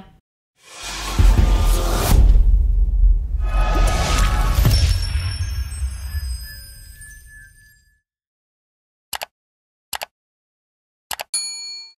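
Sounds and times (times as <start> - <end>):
double mouse click: 9.9 - 10.1, 11.1 - 11.3
notification bell ding: 11.4 - 12.0.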